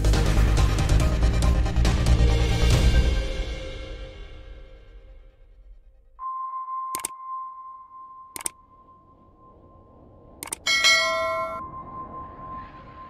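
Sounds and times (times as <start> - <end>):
steady high tone: 6.2 - 13.0
sharp clicks: 8.4 - 8.6, 10.4 - 10.6
bright bell chime: 10.7 - 12.2.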